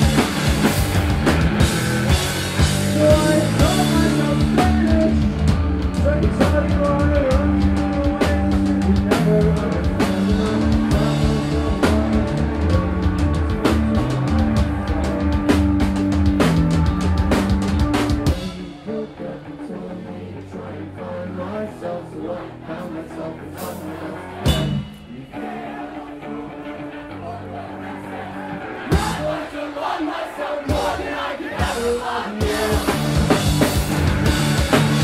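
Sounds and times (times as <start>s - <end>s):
live rock band playing: 0.0s - 35.0s.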